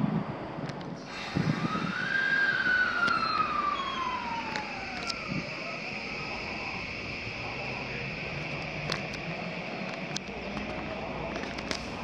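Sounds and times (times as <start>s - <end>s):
train running rumble: 0.0s - 12.0s
electric train motor whine: 0.8s - 12.0s.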